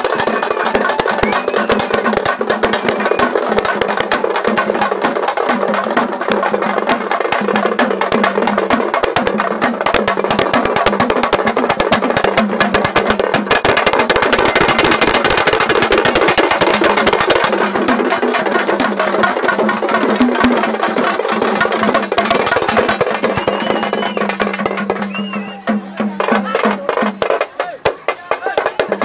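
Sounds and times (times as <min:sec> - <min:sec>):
fast festival drumming: 0:00.0 - 0:29.0.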